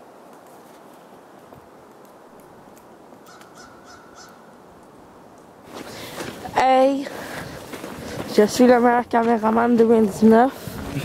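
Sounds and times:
faint bird calls: 3.2s - 4.6s
loud noise: 10.8s - 11.0s.

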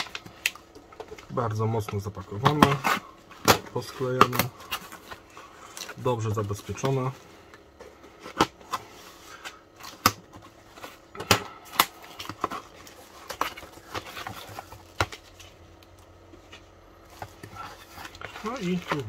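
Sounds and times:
cardboard rustling: 0.0s - 11.1s, 11.9s - 15.6s, 16.2s - 19.0s
bubble wrap packages handled: 0.0s - 19.0s.

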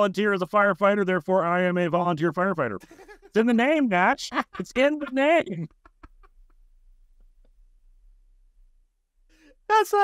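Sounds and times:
room hum: 2.7s - 10.0s.

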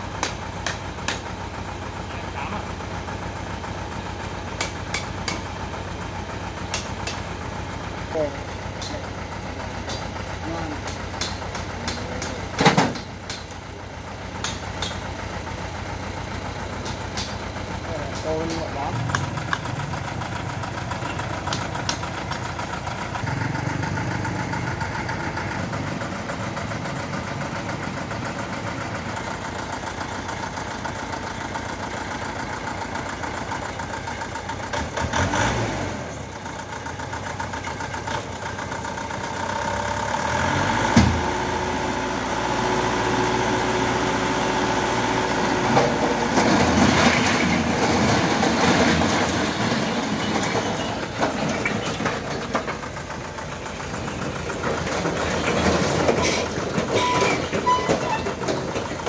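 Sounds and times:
diesel truck engine running: 0.0s - 59.0s.

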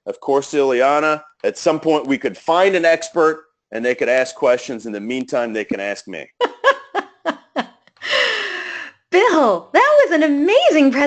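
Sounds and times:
person laughing: 6.4s - 8.4s
breathy falling ohh: 8.0s - 9.0s.

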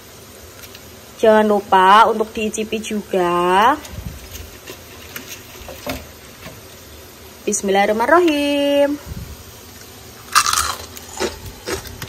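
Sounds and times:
crackers rustling and crackling: 0.4s - 1.2s, 3.7s - 7.1s, 9.7s - 12.0s
dry cracker snaps: 9.8s - 12.0s.

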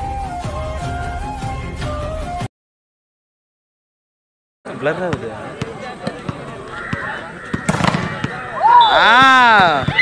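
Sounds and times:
loud drawn-out shout: 8.3s - 10.0s.

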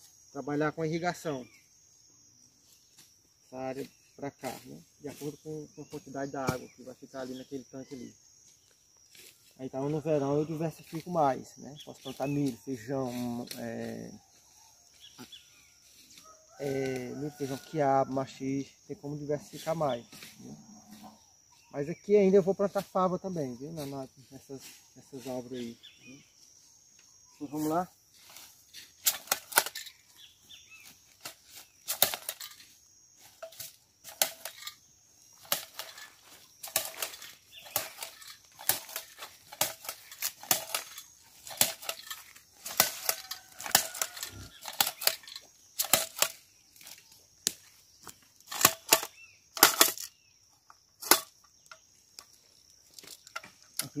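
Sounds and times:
insects buzzing: 0.0s - 54.0s
dry leaves rustling: 27.5s - 50.1s
planter clacking into soil: 29.0s - 30.0s, 31.2s - 32.6s, 33.4s - 34.8s, 35.4s - 46.4s, 48.4s - 50.1s.

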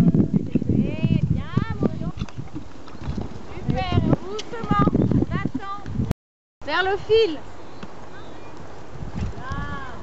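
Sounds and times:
voices: 0.0s - 2.6s, 3.5s - 5.9s
horse hoofbeats on grass: 0.4s - 6.0s.

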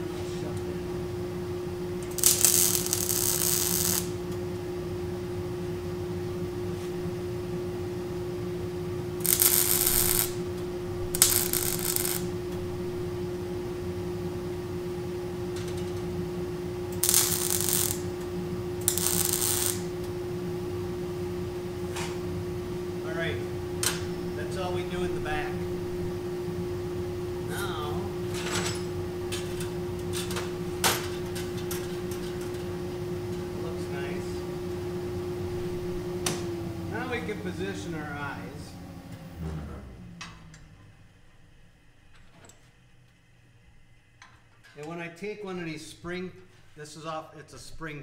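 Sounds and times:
steady welder hum: 0.0s - 44.7s
welding arc bursts: 2.0s - 4.3s, 9.2s - 12.5s, 16.9s - 18.2s, 18.8s - 20.0s.

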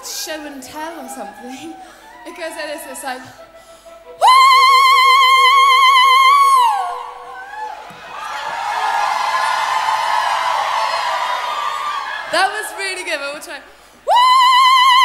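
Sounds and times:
audience howling together: 7.2s - 13.0s.

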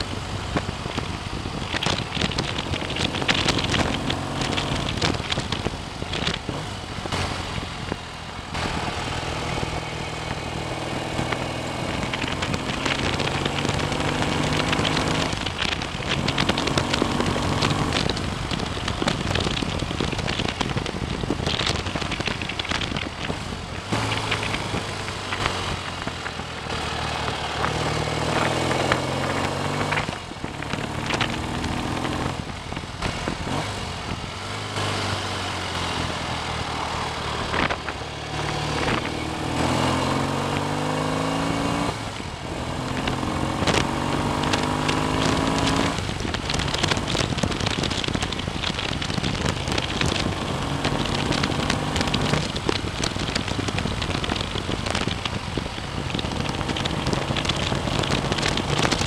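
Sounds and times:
motorcycle engine accelerating: 0.0s - 59.0s
wind and road noise: 0.0s - 59.0s.

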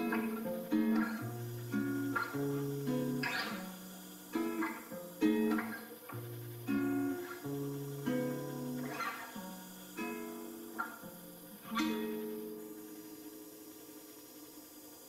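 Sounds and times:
strummed guitar chords: 0.0s - 13.0s.

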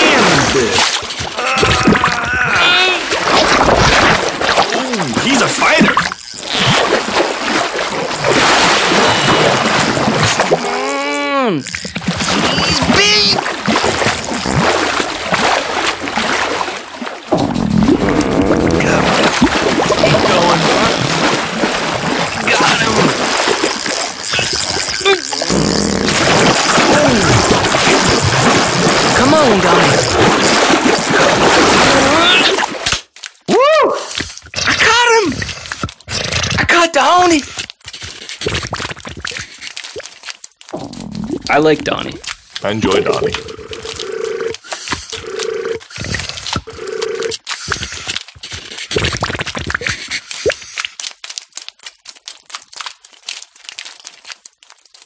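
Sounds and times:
water splashing and churning: 0.0s - 55.0s
indistinct voices: 18.0s - 19.3s.

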